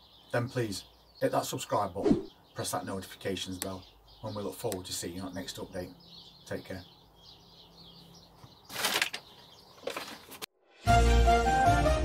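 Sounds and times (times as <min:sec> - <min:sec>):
faint birds chirping: 0:00.0 - 0:10.5
bags rustling: 0:08.7 - 0:10.4.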